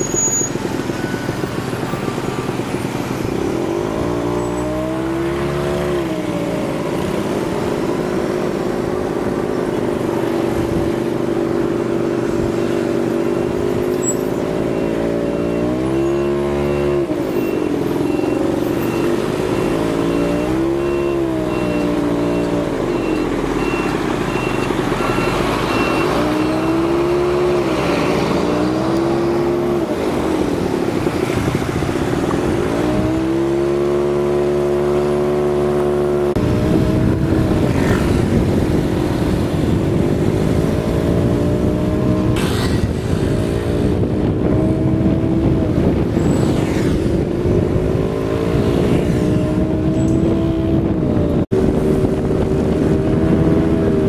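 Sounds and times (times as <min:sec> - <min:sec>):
vehicle engine revving: 0:10.2 - 0:54.0
faint repeating high beep: 0:14.0 - 0:26.5.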